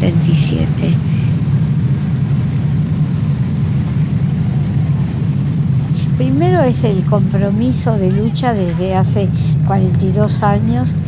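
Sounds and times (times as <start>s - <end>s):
steady low drone: 0.0s - 11.0s
person speaking: 5.9s - 11.0s.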